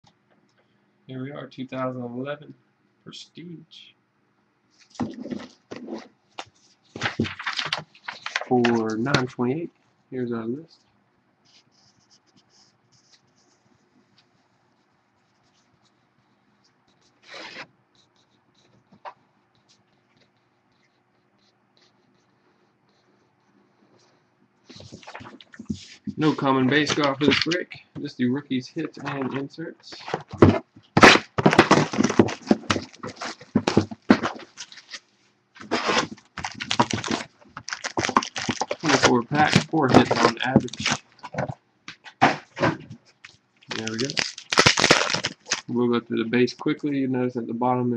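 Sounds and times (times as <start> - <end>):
paper sheet rustling: 4.8 - 9.3, 24.7 - 27.6, 28.8 - 45.8
cardboard scraping and knocking: 4.9 - 6.1, 7.0 - 9.2, 29.0 - 34.8, 35.6 - 43.0
plastic wrap crackling: 7.0 - 8.9, 28.9 - 45.7.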